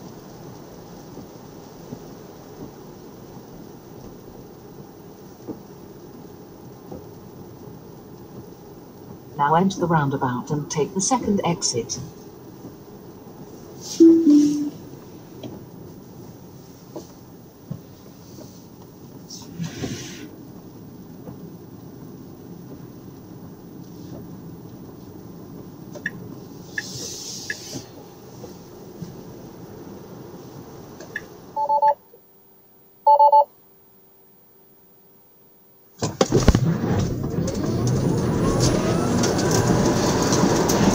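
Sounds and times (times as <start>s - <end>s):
short electronic beeps: 14.0s - 14.8s, 31.6s - 32.0s, 33.1s - 33.5s
two-note electronic chime: 14.0s - 14.8s
tyre and road noise: 36.0s - 40.9s.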